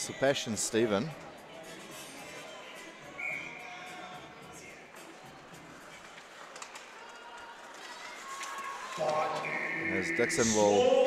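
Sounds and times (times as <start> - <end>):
faint arena music: 0.0 - 11.0.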